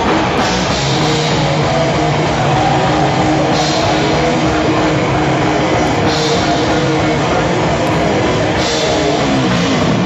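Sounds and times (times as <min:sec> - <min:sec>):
heavy metal band playing live: 0:00.0 - 0:10.0.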